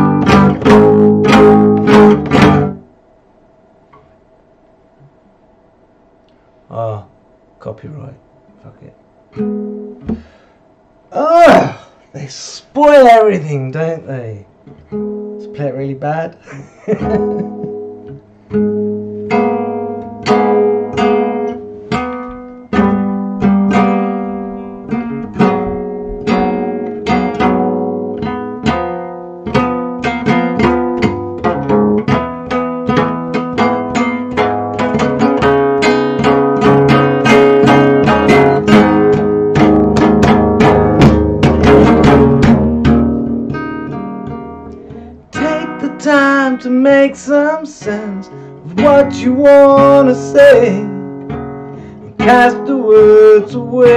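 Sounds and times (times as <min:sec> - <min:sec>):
classical guitar strumming: 0:00.0 - 0:02.9, 0:09.3 - 0:10.6, 0:12.9 - 0:53.9
man singing: 0:11.2 - 0:14.5, 0:45.3 - 0:51.1, 0:52.2 - 0:53.9.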